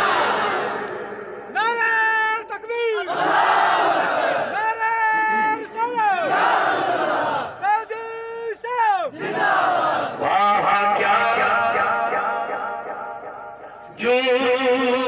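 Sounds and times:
man calling over loudspeakers: 0:00.6 - 0:03.2, 0:04.4 - 0:06.3, 0:07.5 - 0:09.2, 0:10.1 - 0:15.0.

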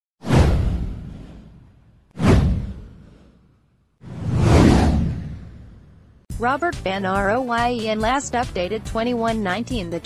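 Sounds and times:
whoosh: 0:00.2 - 0:06.3
deep low rumble: 0:04.1 - 0:06.2.

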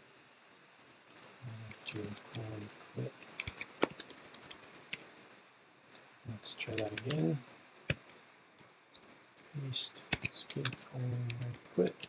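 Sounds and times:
computer keyboard key clicks: 0:01.1 - 0:05.1, 0:10.1 - 0:12.0.

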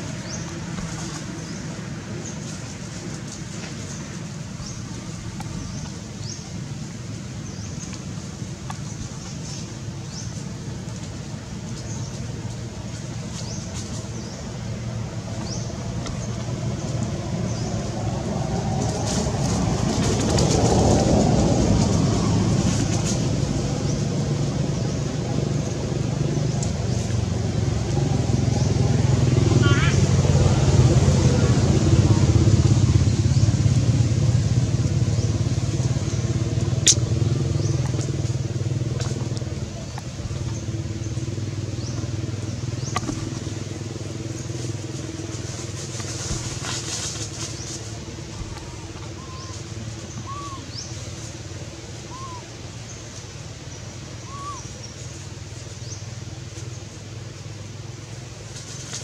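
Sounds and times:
vehicle engine running: 0:00.0 - 0:59.0.

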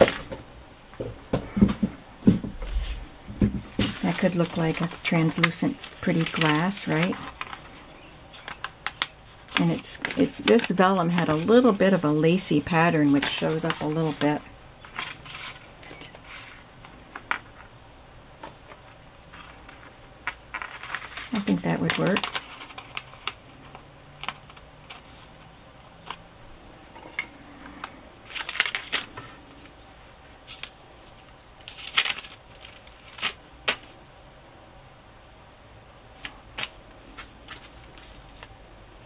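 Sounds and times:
paper rustling and crinkling: 0:01.6 - 0:17.7, 0:18.4 - 0:26.2, 0:27.6 - 0:34.2, 0:36.2 - 0:38.6.

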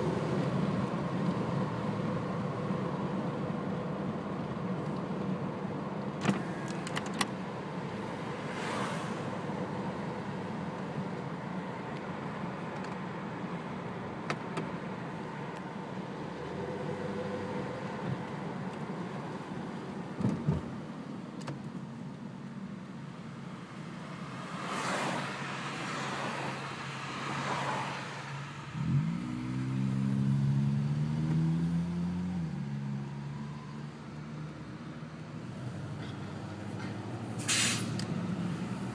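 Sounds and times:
car engine and road noise: 0:00.0 - 0:38.9.

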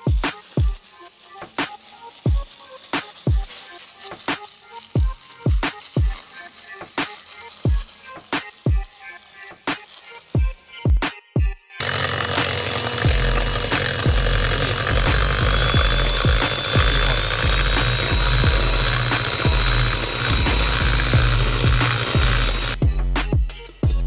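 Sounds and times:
electric hand mixer whine: 0:00.0 - 0:11.0, 0:11.8 - 0:22.8
background music with beat: 0:00.0 - 0:24.0.

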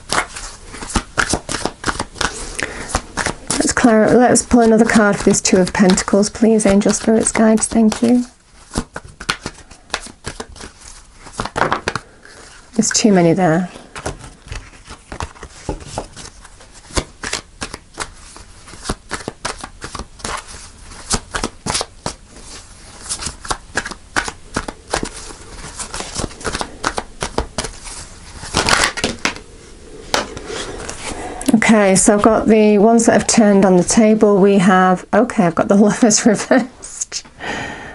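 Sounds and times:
cards being shuffled: 0:00.0 - 0:12.9, 0:13.7 - 0:32.4.

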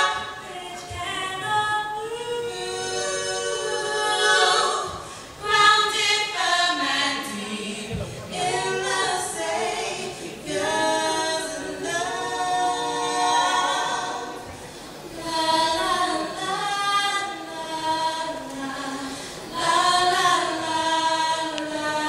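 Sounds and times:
women singing a cappella: 0:00.0 - 0:22.0.

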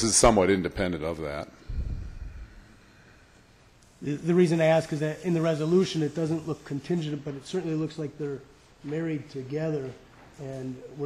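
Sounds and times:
low rumble: 0:01.7 - 0:02.8.

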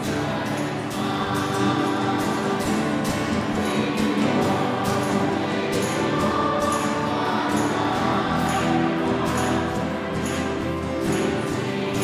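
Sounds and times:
church choir singing a hymn: 0:00.0 - 0:12.0
instrumental accompaniment: 0:00.0 - 0:12.0.

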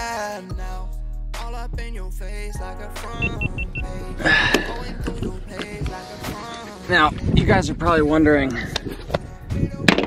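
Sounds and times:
high electronic beeps: 0:03.2 - 0:04.0.

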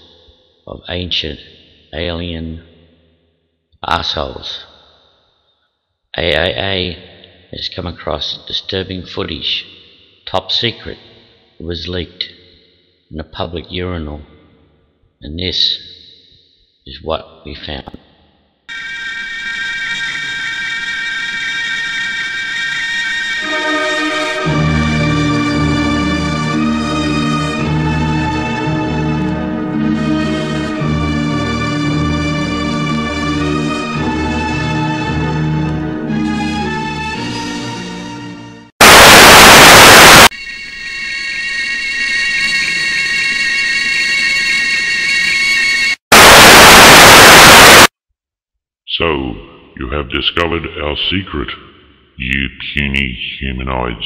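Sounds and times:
high electronic drone: 0:38.8 - 0:40.3, 0:46.1 - 0:47.9
tv static hiss: 0:38.8 - 0:40.3, 0:46.1 - 0:47.9
electronic drone of high tones: 0:38.8 - 0:44.9, 0:46.1 - 0:47.9.

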